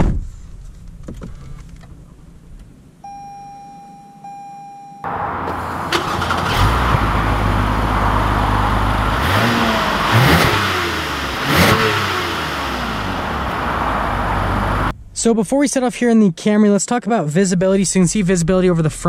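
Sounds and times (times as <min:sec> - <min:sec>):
steady electronic beep: 0:03.0 - 0:05.1
car engine idling and revving: 0:05.0 - 0:15.2.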